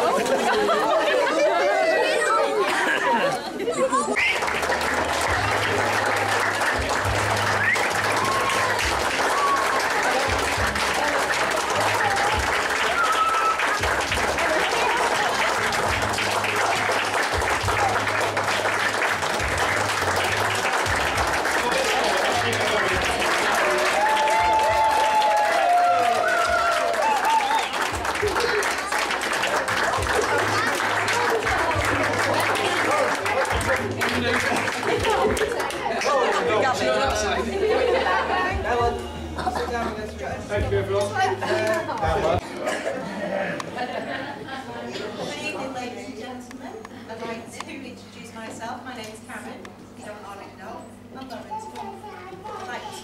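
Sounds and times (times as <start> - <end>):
crowd clapping: 0.0 - 3.3, 4.0 - 37.4
people applauding: 0.0 - 3.3, 4.0 - 37.4
people cheering: 0.0 - 36.6
people laughing and chattering: 0.0 - 53.0.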